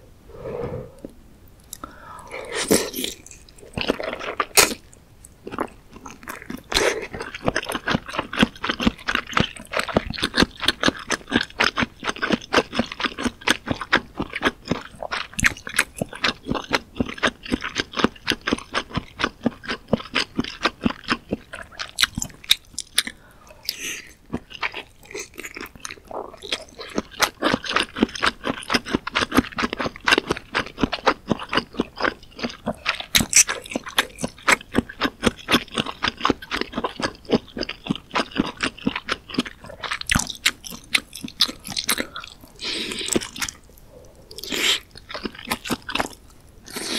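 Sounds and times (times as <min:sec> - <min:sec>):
person chewing wetly: 0:01.6 - 0:46.9.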